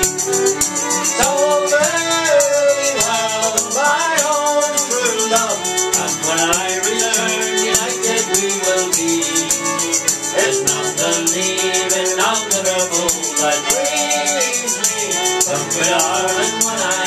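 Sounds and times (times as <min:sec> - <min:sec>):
fiddle melody: 0:00.0 - 0:17.0
hand shaker rhythm: 0:00.0 - 0:17.0
strummed acoustic guitar: 0:00.0 - 0:17.0.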